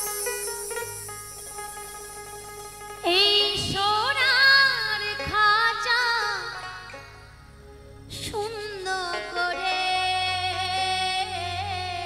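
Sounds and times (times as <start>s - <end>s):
woman singing folk song: 3.0s - 7.1s, 8.1s - 12.0s.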